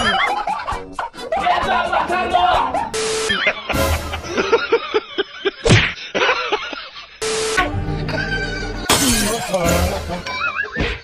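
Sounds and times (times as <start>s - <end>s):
background music: 0.0s - 5.1s, 7.2s - 11.0s
glass shattering: 8.9s - 9.9s.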